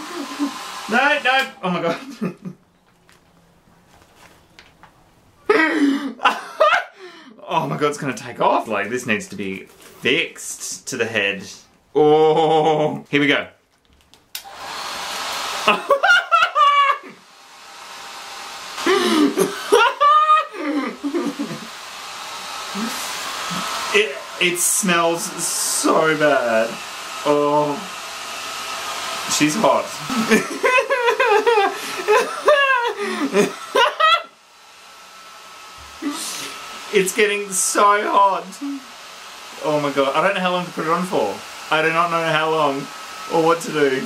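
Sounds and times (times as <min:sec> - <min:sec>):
hair dryer blowing: 0:00.0 - 0:02.3, 0:14.4 - 0:44.0
man laughing: 0:00.0 - 0:02.6, 0:05.5 - 0:07.8, 0:12.0 - 0:13.1, 0:15.6 - 0:17.2, 0:18.8 - 0:21.8, 0:29.3 - 0:34.3, 0:36.0 - 0:36.5, 0:38.0 - 0:38.8.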